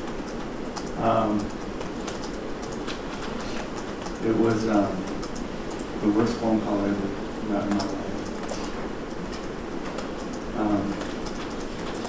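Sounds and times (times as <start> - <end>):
room hiss and low hum: 0.0 - 12.0
faint clicks: 0.1 - 4.3, 7.6 - 12.0.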